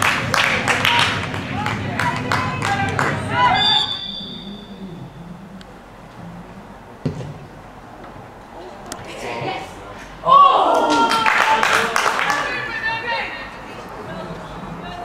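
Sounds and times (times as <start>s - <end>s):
spectators clapping and calling out: 0.0s - 3.7s, 10.6s - 13.7s
referee's whistle blast: 3.5s - 4.7s.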